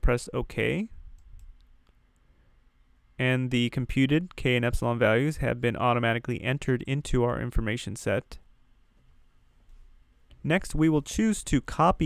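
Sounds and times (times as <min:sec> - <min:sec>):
low hiss: 0:00.0 - 0:12.0
computer mouse clicks: 0:01.2 - 0:02.0.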